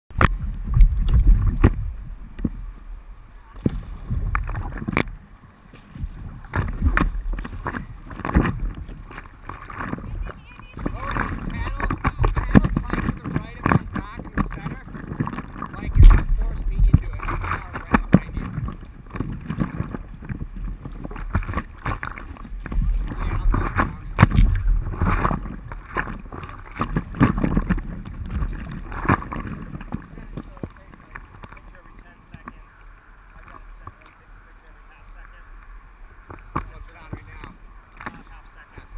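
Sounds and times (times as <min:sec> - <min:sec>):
paddle strokes in water: 0:00.1 - 0:38.9
wind buffeting microphone: 0:00.1 - 0:38.9
water splashing against board: 0:03.5 - 0:34.3, 0:35.0 - 0:38.9.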